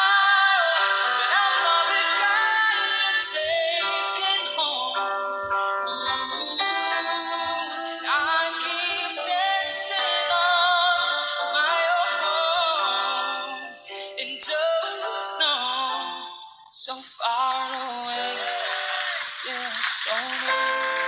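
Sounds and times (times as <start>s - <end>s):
backing track: 0.0s - 21.0s
man singing pop song: 0.0s - 21.0s.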